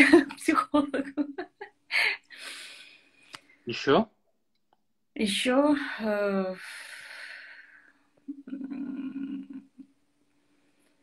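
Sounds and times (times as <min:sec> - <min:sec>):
woman speaking: 0:00.0 - 0:02.6, 0:05.2 - 0:07.6, 0:08.3 - 0:09.8
breath: 0:02.2 - 0:03.3, 0:06.6 - 0:08.1.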